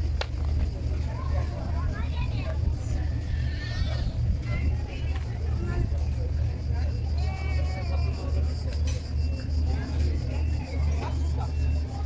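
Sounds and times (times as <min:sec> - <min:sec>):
people talking: 0:00.0 - 0:12.0
steady low rumble: 0:00.0 - 0:12.0.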